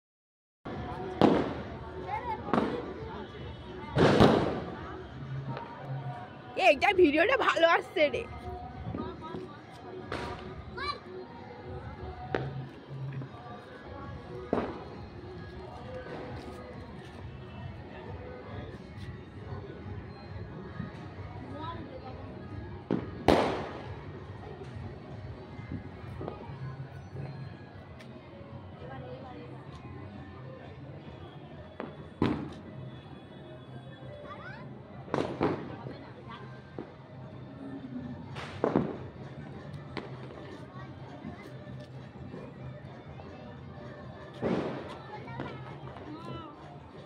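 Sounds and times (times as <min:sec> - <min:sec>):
fireworks bangs: 0:01.2 - 0:01.6, 0:04.0 - 0:04.7, 0:22.9 - 0:23.8, 0:35.1 - 0:35.8.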